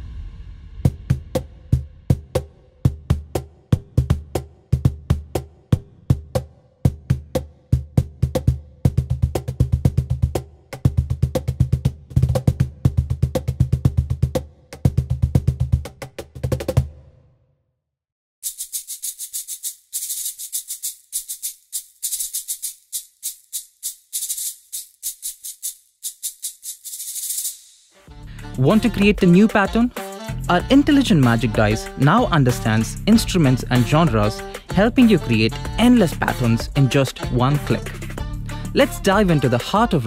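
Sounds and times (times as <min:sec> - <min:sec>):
sampled cajon rhythm: 0:18.4 - 0:27.6, 0:28.2 - 0:40.0
sampled shaker pattern: 0:18.4 - 0:40.0.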